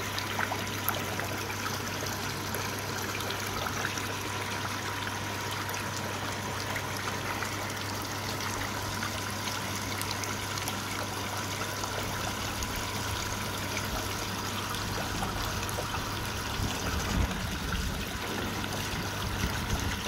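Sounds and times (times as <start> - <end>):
low steady hum: 0.0 - 20.0
water trickling into pond: 0.0 - 20.0.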